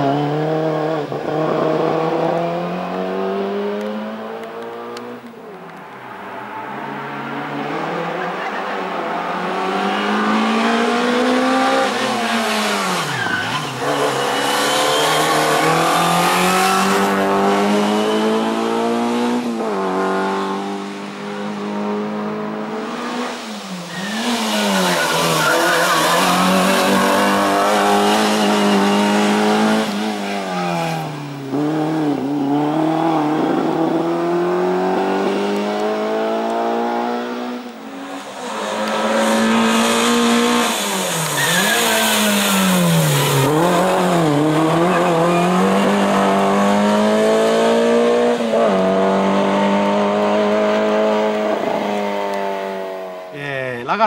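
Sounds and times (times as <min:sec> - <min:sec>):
race car engine revving: 0:07.0 - 0:53.2.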